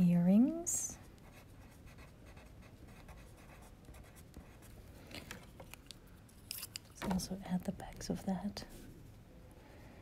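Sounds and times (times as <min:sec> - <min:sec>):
pencil scratching on paper: 0:01.0 - 0:04.7.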